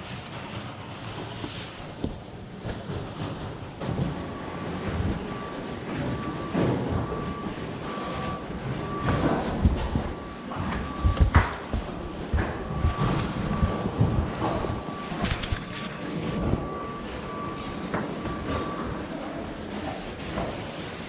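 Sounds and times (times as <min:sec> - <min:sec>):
faint broken beeping tone: 0:02.9 - 0:21.0
soft thumps of walking: 0:09.0 - 0:14.9.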